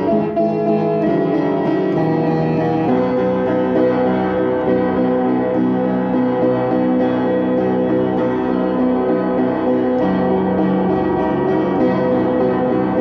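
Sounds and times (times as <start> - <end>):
piano chords: 0.0 - 13.0.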